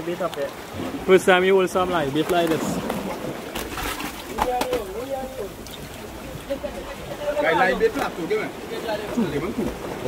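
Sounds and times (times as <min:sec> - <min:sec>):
sea water splashing on rocks: 0:00.0 - 0:10.0.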